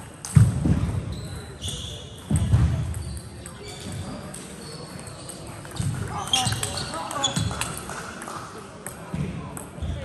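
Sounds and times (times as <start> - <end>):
brief high squeaks: 1.1 - 2.2.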